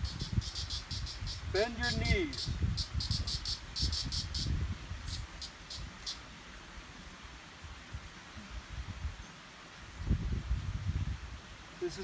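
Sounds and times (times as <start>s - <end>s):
insect chirping: 0.0s - 6.3s.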